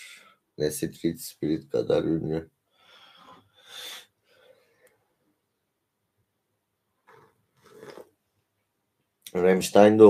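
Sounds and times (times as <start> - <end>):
person sipping and swallowing: 7.1 - 8.1.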